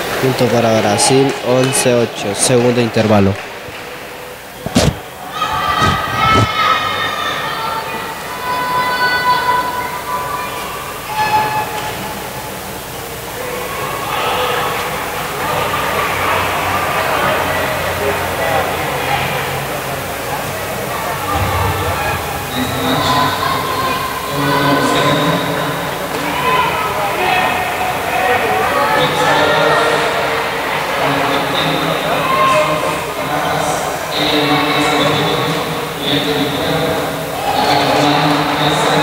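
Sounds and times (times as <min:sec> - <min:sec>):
people talking in echoing hall: 0:00.0 - 0:39.0.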